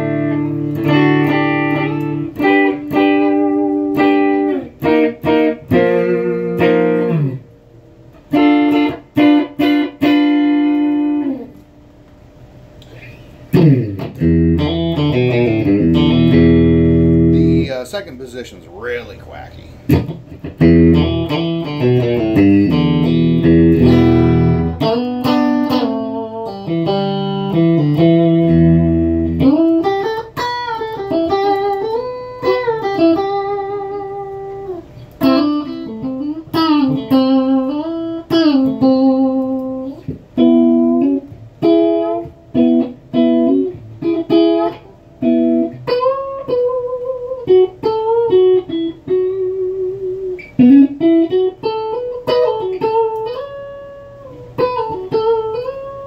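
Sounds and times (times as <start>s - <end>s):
clean electric guitar: 0.0s - 17.9s, 19.6s - 56.0s.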